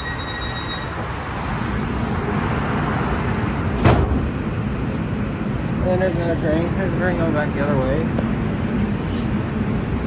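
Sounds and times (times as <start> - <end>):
traffic outside: 0.0 - 10.0
train car running equipment: 0.0 - 10.0.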